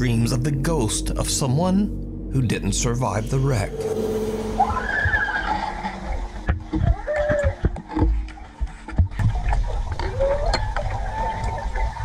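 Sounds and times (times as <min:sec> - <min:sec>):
low watery rumble: 0:00.0 - 0:12.0
high wavering cry-like tone: 0:03.1 - 0:06.4.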